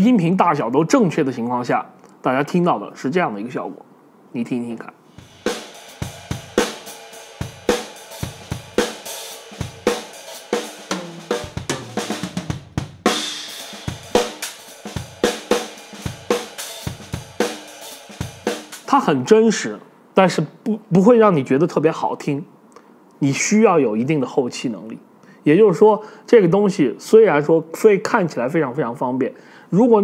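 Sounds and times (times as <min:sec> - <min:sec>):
cymbal crash: 0:05.1 - 0:18.9
drum kit groove: 0:05.1 - 0:19.2.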